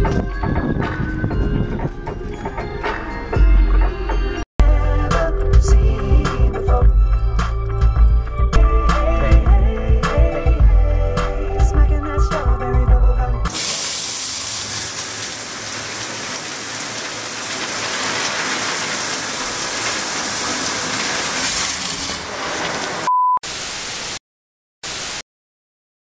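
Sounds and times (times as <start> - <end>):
music: 0.0 - 13.6
shower spraying on tiles: 13.5 - 23.1
static bursts: 22.2 - 24.2, 24.8 - 25.2
short beep: 23.1 - 23.4.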